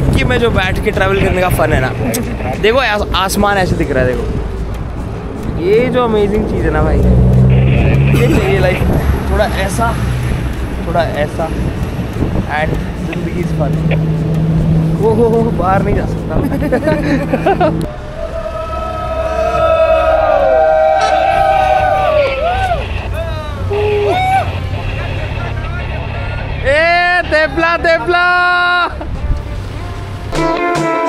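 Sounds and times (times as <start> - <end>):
car engine hum and road noise: 0.0 - 30.5
faint voices: 17.9 - 30.0.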